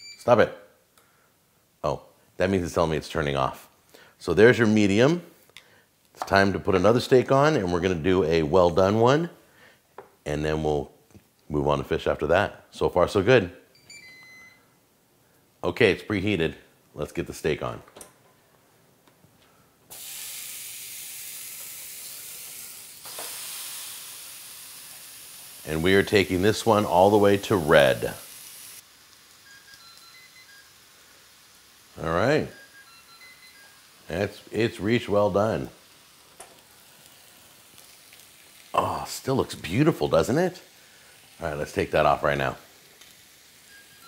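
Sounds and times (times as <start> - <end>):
steak sizzling on a grill: 19.9 - 44.0
man's voice: 25.7 - 28.2, 38.8 - 40.7.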